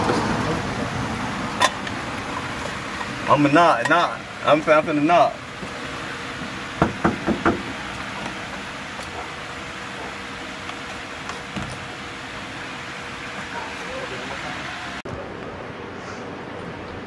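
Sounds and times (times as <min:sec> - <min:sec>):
steady background noise: 0:00.0 - 0:17.0
knocking on a door: 0:06.8 - 0:07.6.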